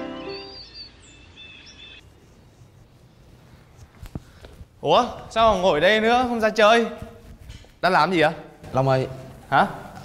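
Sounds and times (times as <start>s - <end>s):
music: 0.0s - 0.6s
birds chirping and warbling: 0.0s - 2.4s.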